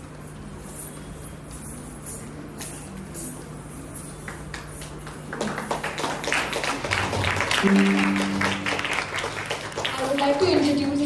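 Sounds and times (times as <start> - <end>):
audience clapping: 4.2 - 11.0.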